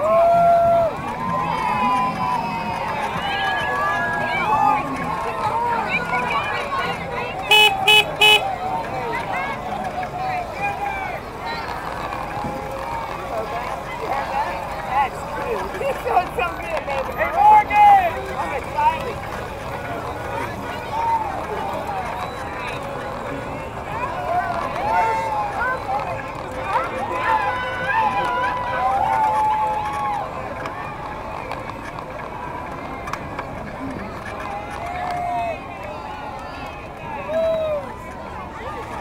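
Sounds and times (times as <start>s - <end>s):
crowd talking and calling out: 0.0s - 39.0s
slow-moving vehicle noise: 0.0s - 39.0s.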